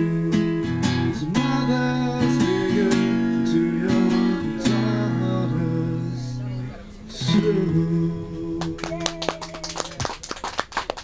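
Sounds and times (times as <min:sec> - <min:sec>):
acoustic guitar chord ringing: 0:00.0 - 0:08.7
hand claps applause: 0:08.6 - 0:11.0.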